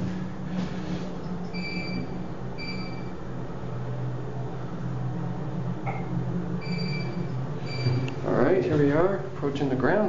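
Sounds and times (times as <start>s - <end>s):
elevator hum: 0.0s - 10.0s.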